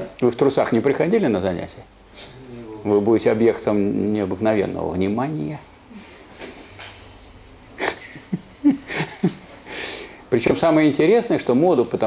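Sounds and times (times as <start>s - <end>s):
person chuckling: 7.7s - 9.6s.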